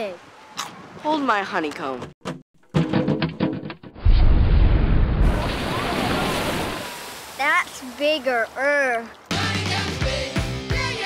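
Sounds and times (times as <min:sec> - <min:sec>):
deep splash into pool: 0:04.0 - 0:08.2
rush of falling spray: 0:05.2 - 0:08.4.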